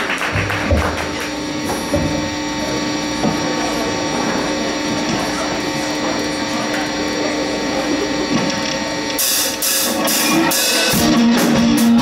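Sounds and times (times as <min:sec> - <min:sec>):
cymbal crashes: 0:09.2 - 0:12.0
live rock band: 0:09.2 - 0:12.0.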